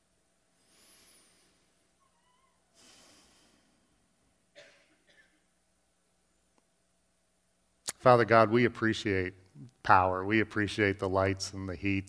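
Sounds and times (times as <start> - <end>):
soft hiss: 0.0 - 12.0
faint brief squeak: 2.0 - 3.2.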